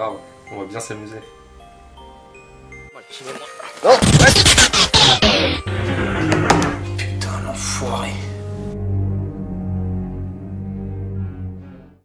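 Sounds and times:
sharp hits: 0:04.0 - 0:07.0.

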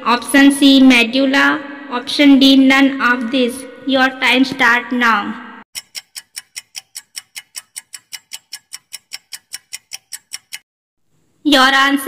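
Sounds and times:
fast clock ticks: 0:05.8 - 0:10.7.

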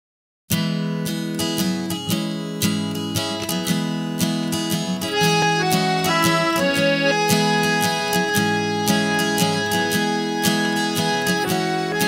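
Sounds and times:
strummed accompaniment: 0:00.5 - 0:12.0
accordion playing chords and melody: 0:05.0 - 0:12.0.

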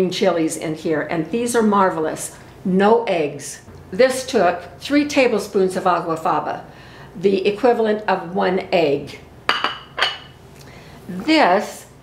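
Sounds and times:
dishware clinking on countertop: 0:09.5 - 0:10.4.

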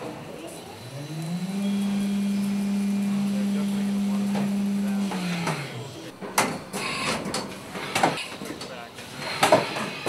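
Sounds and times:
milling machine cutting metal: 0:00.8 - 0:08.3.

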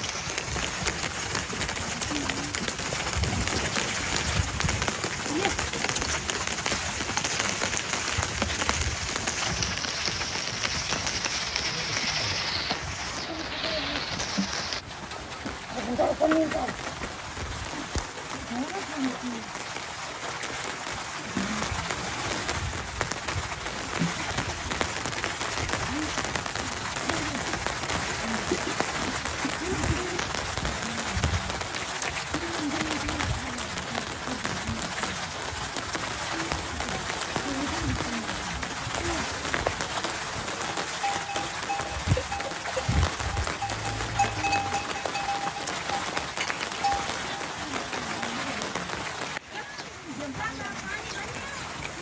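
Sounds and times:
steady rain falling: 0:00.0 - 0:52.0
steady high tone: 0:41.0 - 0:47.7.

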